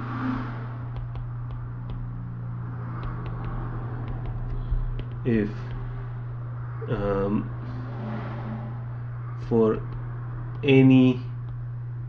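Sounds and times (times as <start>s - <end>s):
steady low hum: 0.0s - 12.0s
stylus tapping on screen: 0.9s - 2.2s, 2.8s - 6.0s, 11.4s - 11.7s.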